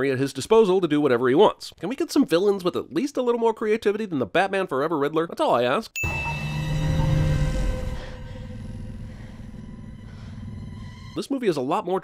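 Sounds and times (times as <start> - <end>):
tense music with held notes: 6.0 - 11.2
drone deep rumbling hum: 6.1 - 11.2.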